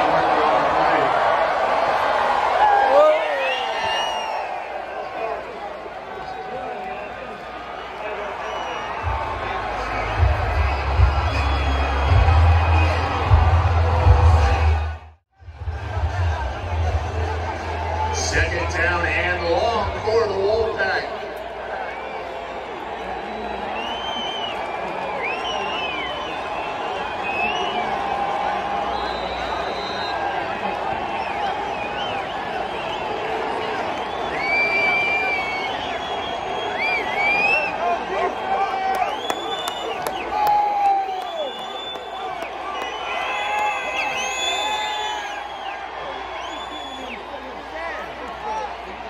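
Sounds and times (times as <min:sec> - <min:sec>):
stadium crowd cheering: 0:00.0 - 0:49.0.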